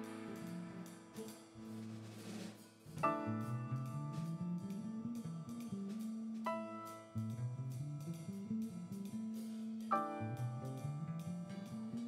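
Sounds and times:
electric bass notes: 0:00.0 - 0:02.2, 0:03.0 - 0:12.0
light drums and cymbals: 0:00.0 - 0:12.0.

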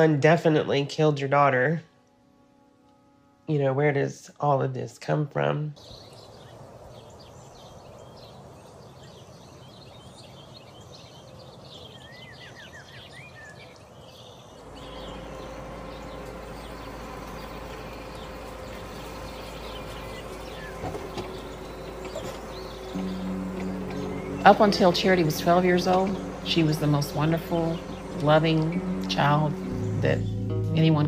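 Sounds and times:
bird chirps: 0:05.8 - 0:31.0
low steady hum: 0:14.2 - 0:31.0
soft background music: 0:14.6 - 0:31.0.

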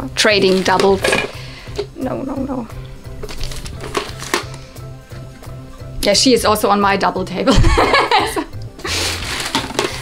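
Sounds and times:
quiet background music: 0:00.0 - 0:10.0
plastic bag rustling: 0:00.2 - 0:01.6, 0:03.1 - 0:05.4, 0:08.8 - 0:10.0.

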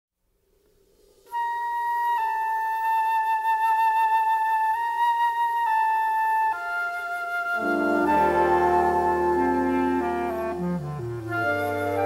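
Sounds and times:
wind instrument holding notes: 0:01.3 - 0:12.0
soft sustained chord: 0:07.6 - 0:12.0.

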